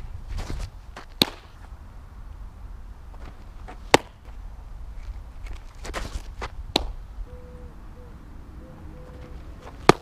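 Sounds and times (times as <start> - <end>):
cleats scuffing dirt: 0.0 - 1.8, 3.1 - 6.9, 9.0 - 10.0
ball smacking into mitt: 1.2 - 1.5, 3.9 - 4.2, 6.7 - 7.0, 9.8 - 10.0.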